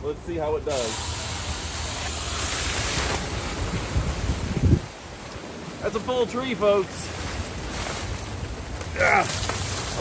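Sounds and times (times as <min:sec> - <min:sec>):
wind buffeting microphone: 0:01.6 - 0:05.8.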